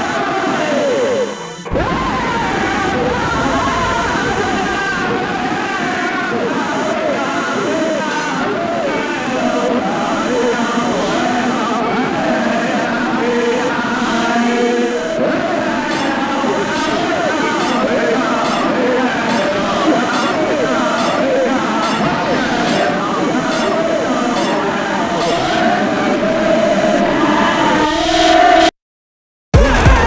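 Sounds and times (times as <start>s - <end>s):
chanted vocals over backing: 0.0s - 28.7s
overlapping voices and chatter: 0.0s - 28.7s
held tone: 0.6s - 27.9s.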